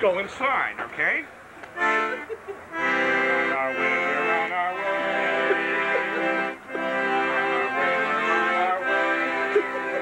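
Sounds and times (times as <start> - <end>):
polka band music: 1.8 - 10.0.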